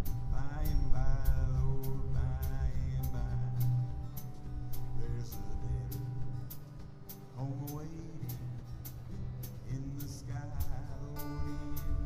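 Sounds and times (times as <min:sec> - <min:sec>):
acoustic guitars playing blues: 0:00.0 - 0:12.0
crisp percussion tick: 0:00.6 - 0:12.0.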